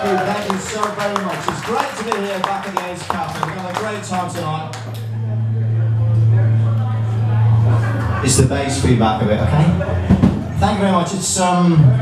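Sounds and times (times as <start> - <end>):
double bass feedback hum: 2.4 - 12.0.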